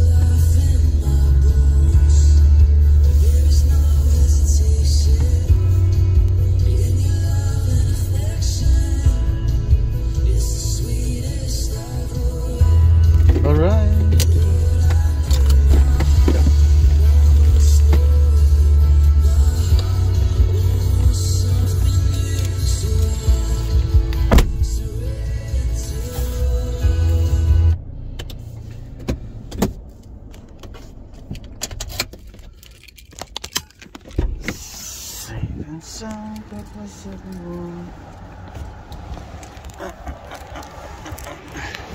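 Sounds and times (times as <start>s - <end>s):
song with heavy bass: 0.0s - 27.8s
handling clicks: 30.0s - 34.4s.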